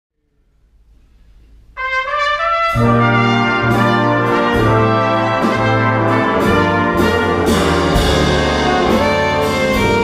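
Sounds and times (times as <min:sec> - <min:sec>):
faint room noise: 0:00.2 - 0:02.5
big band brass held note: 0:01.8 - 0:10.0.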